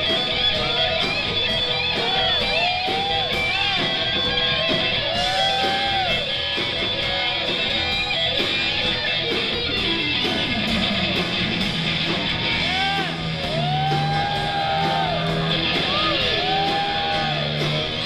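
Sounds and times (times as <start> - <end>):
electric guitar lead with bends: 0.0 - 18.0
live rock band: 0.0 - 18.0.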